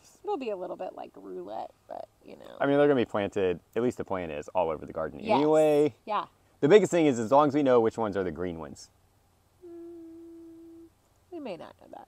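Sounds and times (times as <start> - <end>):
woman humming: 9.6 - 11.0.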